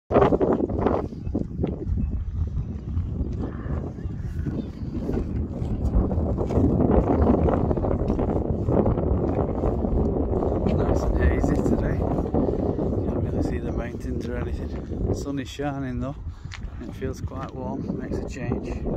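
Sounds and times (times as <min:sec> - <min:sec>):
wind noise on microphone: 0:00.1 - 0:18.9.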